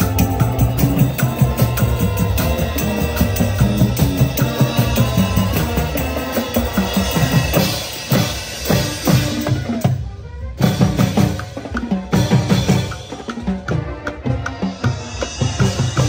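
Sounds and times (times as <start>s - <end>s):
marching drum line: 0.0s - 10.0s, 10.6s - 16.0s
brass band playing: 0.0s - 16.0s.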